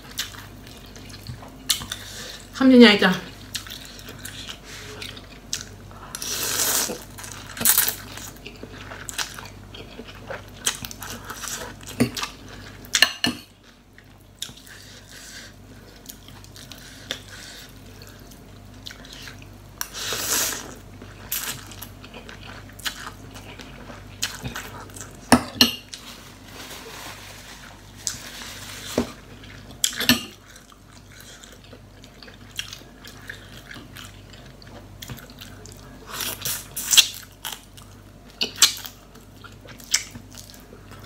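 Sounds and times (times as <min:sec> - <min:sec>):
chewing: 0:03.4 - 0:13.0, 0:13.6 - 0:25.3, 0:28.0 - 0:41.0.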